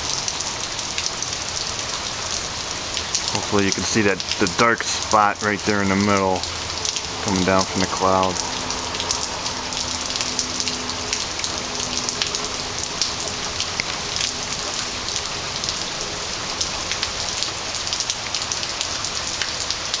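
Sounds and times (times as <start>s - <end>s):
heavy rain pouring: 0.0s - 20.0s
raindrops ticking on surfaces: 0.0s - 20.0s.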